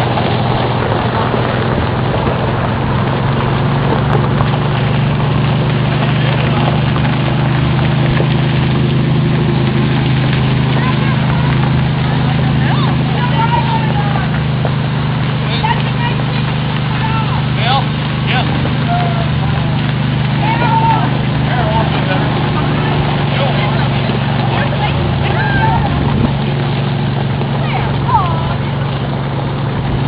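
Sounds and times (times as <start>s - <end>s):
golf cart engine drone: 0.0s - 30.0s
riders' voices and calls: 0.0s - 30.0s.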